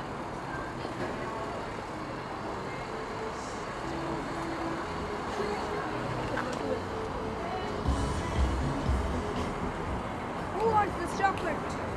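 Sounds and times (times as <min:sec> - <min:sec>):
road traffic rumble: 0:00.0 - 0:11.9.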